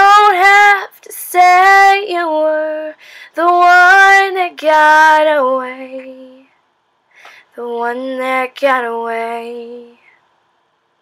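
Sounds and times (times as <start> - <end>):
woman singing a cappella: 0.0 - 6.6, 7.3 - 10.2
quick breath: 7.1 - 7.5.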